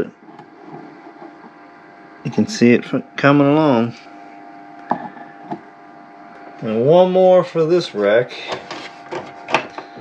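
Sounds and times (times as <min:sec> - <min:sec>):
faint appliance hum: 0:00.0 - 0:10.0.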